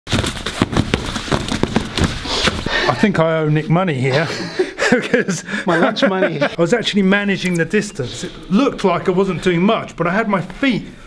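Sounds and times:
boxing gloves smacking: 0:00.1 - 0:02.7.

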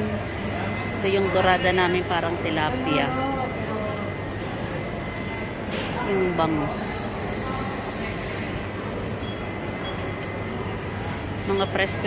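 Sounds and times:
indoor market hall background: 0:00.0 - 0:12.0.

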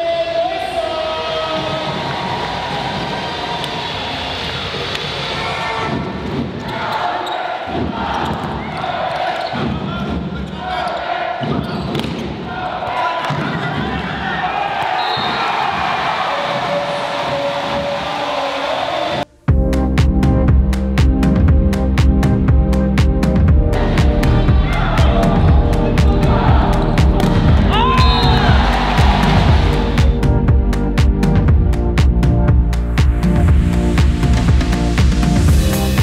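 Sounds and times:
crowd noise in sports hall: 0:00.0 - 0:19.3, 0:23.8 - 0:30.2.

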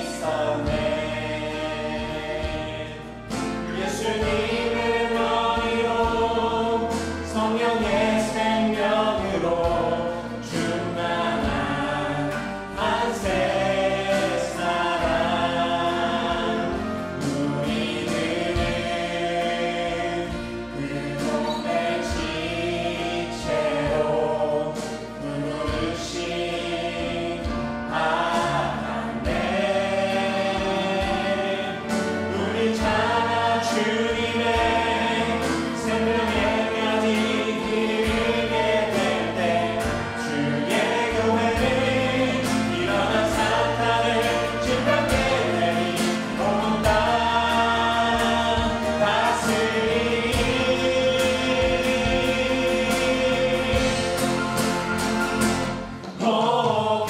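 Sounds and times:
group singing praise song: 0:00.0 - 0:57.0
instrumental backing: 0:00.0 - 0:57.0.

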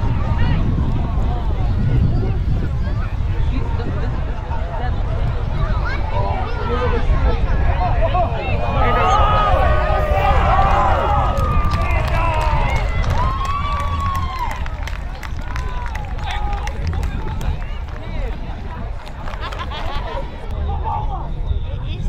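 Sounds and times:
voices shouting and calling out: 0:00.0 - 0:22.0
wind rumble on microphone: 0:00.0 - 0:22.0.

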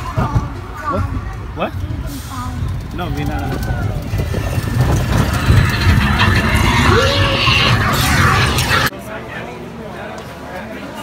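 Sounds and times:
roller coaster rumbling on track: 0:00.0 - 0:08.9
wind on microphone: 0:02.6 - 0:08.9.

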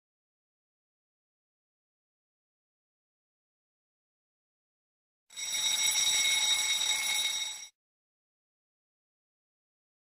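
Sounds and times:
timer alarm ringing: 0:05.3 - 0:07.8.

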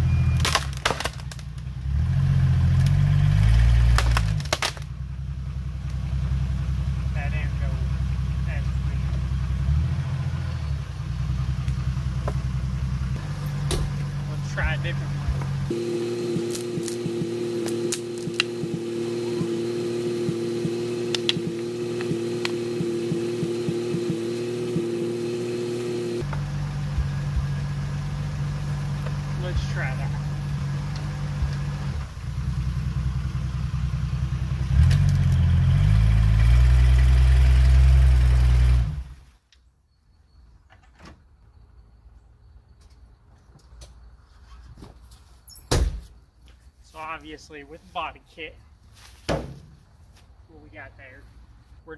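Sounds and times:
car engine revving: 0:01.8 - 0:39.2.

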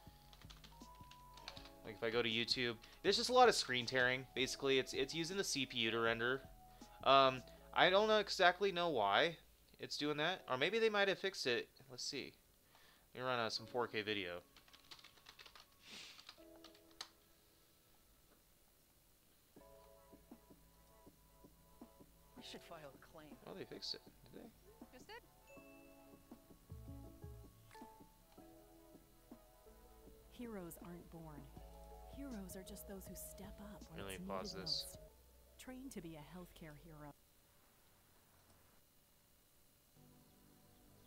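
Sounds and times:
keyboard typing: 0:00.0 - 0:01.8, 0:14.6 - 0:17.2
faint music: 0:00.0 - 0:41.0.

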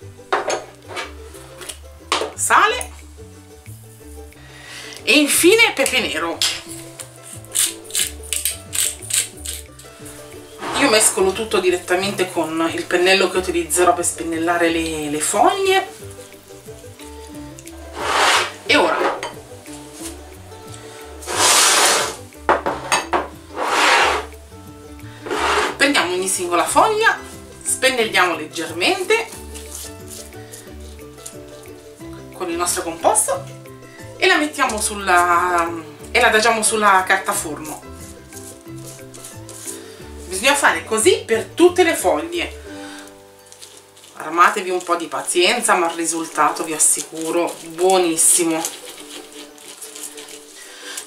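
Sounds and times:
background music: 0:00.0 - 0:51.0
baking tray sliding on table: 0:10.5 - 0:11.2, 0:17.9 - 0:19.2, 0:21.2 - 0:22.2, 0:23.5 - 0:24.3, 0:25.2 - 0:25.8
ceramic bowls clinking on table: 0:18.9 - 0:19.4, 0:22.5 - 0:23.4.

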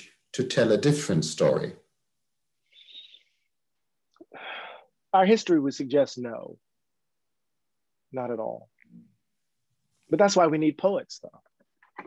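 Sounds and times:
faint breathy vocal sound: 0:04.2 - 0:05.0.

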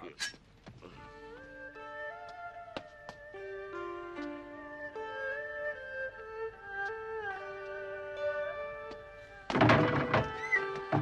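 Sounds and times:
sustained string music: 0:00.9 - 0:11.0.

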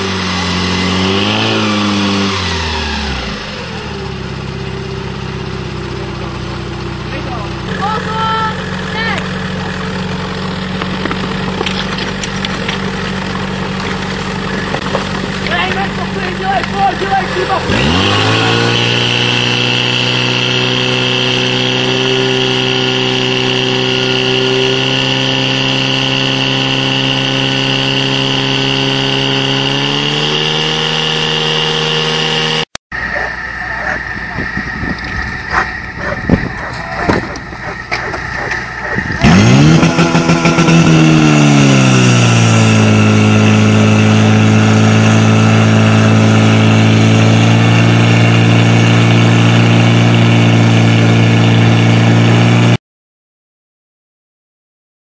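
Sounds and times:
fire pump engine revving: 0:00.0 - 0:52.8.

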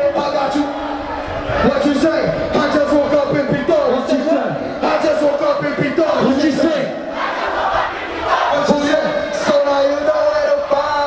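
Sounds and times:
concert crowd shouting and chanting: 0:00.0 - 0:11.0.

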